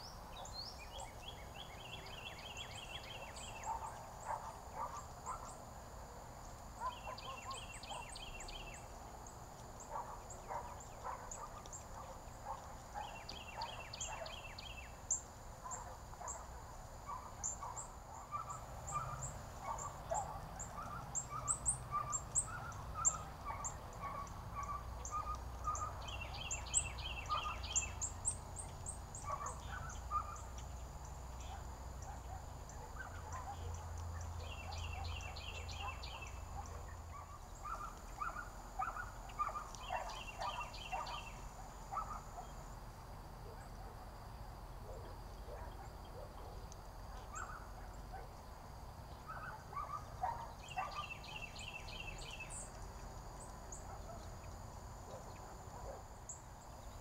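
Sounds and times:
birds chirping: 0.0 - 5.6, 6.4 - 9.0, 9.8 - 42.6, 49.1 - 57.0.

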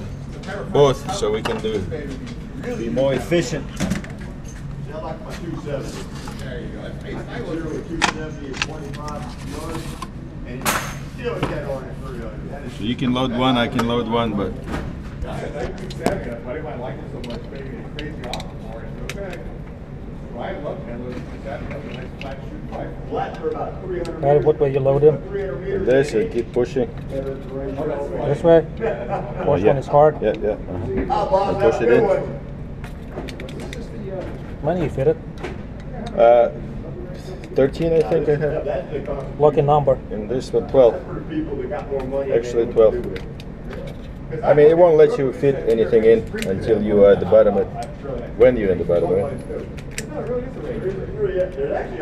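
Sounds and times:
people talking: 0.0 - 4.0, 4.8 - 19.6, 20.3 - 32.4, 33.3 - 35.2, 35.9 - 52.0
low background noise: 0.0 - 52.0.

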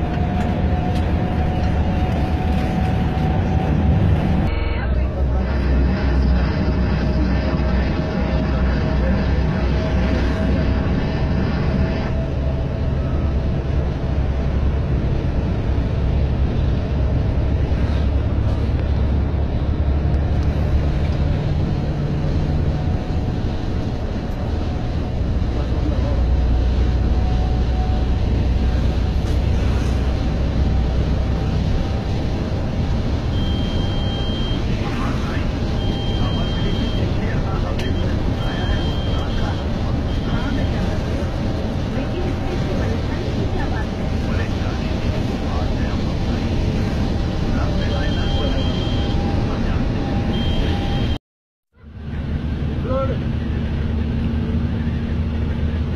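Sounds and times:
diesel engine rumble: 0.0 - 55.9
road noise: 0.0 - 55.9
short high beeps: 33.3 - 34.7, 35.8 - 37.2, 37.8 - 40.8, 48.0 - 49.2, 50.3 - 51.2.

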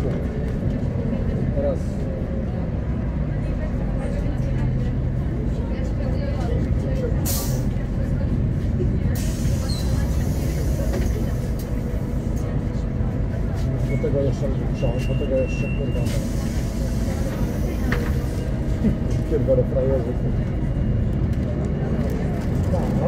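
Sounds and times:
bus diesel engine idling: 0.0 - 23.0.

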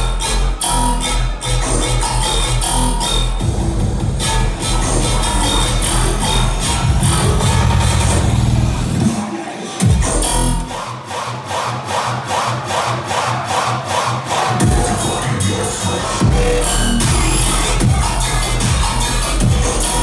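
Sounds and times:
dubstep music with heavy bass: 0.0 - 20.0.

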